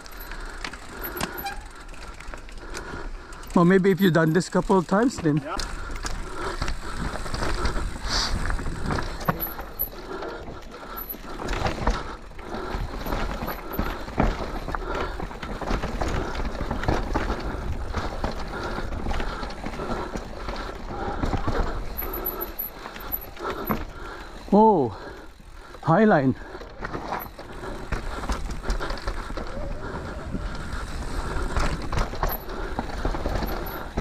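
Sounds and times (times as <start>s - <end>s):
chain and frame rattling: 0.0s - 2.4s, 8.5s - 12.1s, 21.6s - 23.8s, 31.6s - 34.0s
bike tyres rolling over dirt: 0.0s - 34.0s.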